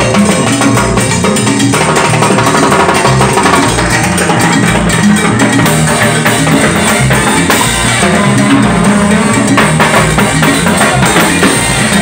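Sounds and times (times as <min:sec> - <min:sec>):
drum kit: 0:00.0 - 0:12.0
tropical dance orchestra playing: 0:00.0 - 0:12.0.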